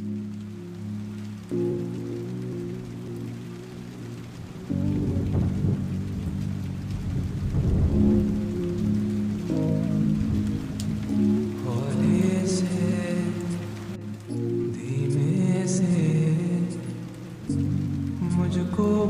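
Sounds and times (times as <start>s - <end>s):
lofi music with low chords: 0.0s - 19.0s
steady rain: 0.0s - 19.0s
low rumble of thunder: 4.4s - 12.6s.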